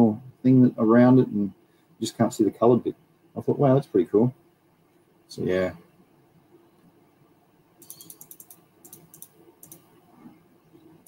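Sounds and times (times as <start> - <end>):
computer mouse clicks: 7.8 - 9.9.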